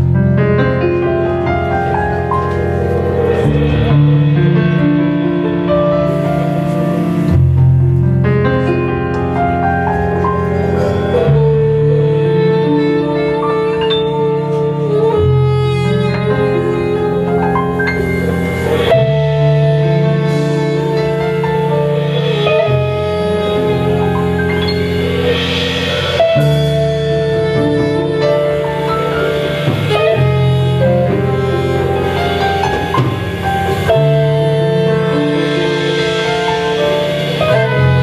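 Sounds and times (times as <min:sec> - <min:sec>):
alto saxophone: 0:00.0 - 0:38.0
piano: 0:00.0 - 0:38.0
long held note: 0:08.6 - 0:38.0
low sustained bass note: 0:10.4 - 0:38.0.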